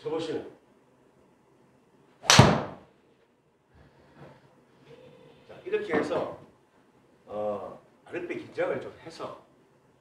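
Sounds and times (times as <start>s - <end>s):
golf driver striking ball: 2.2s - 2.8s.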